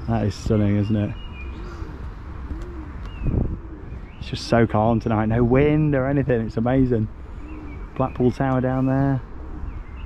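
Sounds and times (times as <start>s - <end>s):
pigeon cooing: 1.3s - 4.6s, 7.0s - 10.0s.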